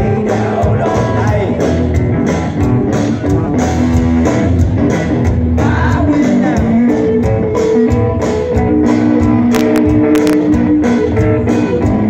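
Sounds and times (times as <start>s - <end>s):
blues-rock band playing: 0.0s - 12.0s.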